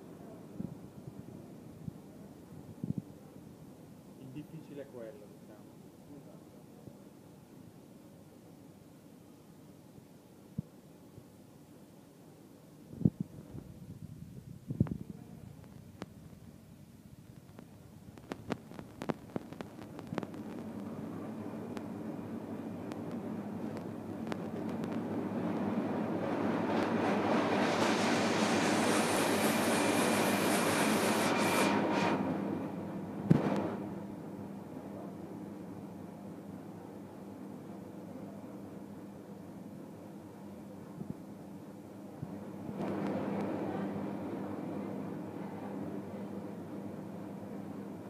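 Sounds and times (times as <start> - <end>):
machine rushing noise: 25.4 - 32.7.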